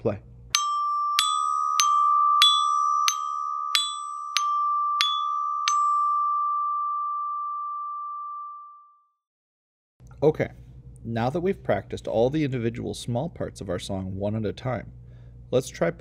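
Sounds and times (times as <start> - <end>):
glockenspiel struck with mallets: 0.5 - 8.8.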